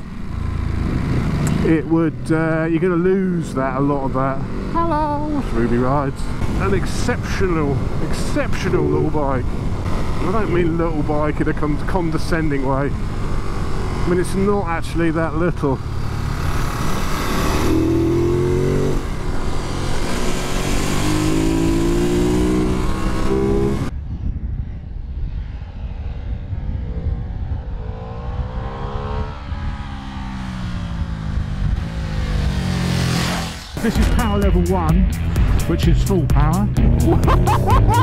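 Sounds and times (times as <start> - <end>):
distant motorcycle passing by: 0.0 - 23.9, 26.4 - 33.8
motorcycle engine accelerating: 0.0 - 24.2, 25.7 - 35.8.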